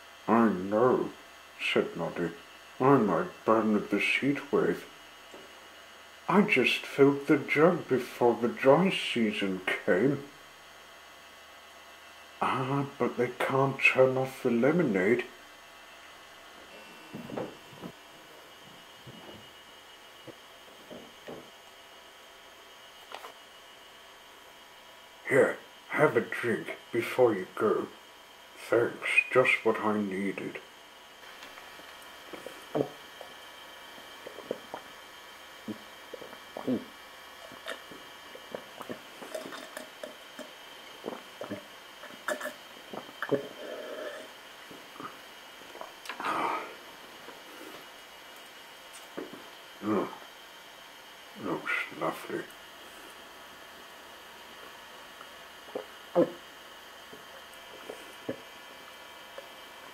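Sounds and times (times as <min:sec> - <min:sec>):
faint steady hum: 0:00.0 - 0:59.9
wet clicks and gulps swallowing: 0:34.2 - 0:34.9, 0:37.4 - 0:44.3, 0:45.6 - 0:46.2, 0:55.2 - 0:55.9.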